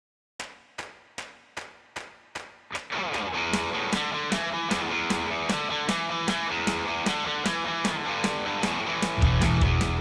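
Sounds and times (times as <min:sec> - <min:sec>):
sharp percussive hits: 0:00.4 - 0:09.2
rock music: 0:02.8 - 0:10.0.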